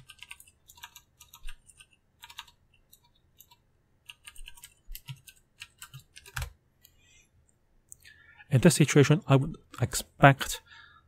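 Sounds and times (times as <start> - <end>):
keyboard typing: 0.0 - 6.6.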